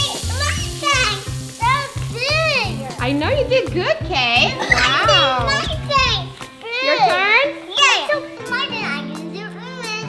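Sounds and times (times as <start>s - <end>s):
children squealing excitedly: 0.0s - 2.6s
background music: 0.0s - 10.0s.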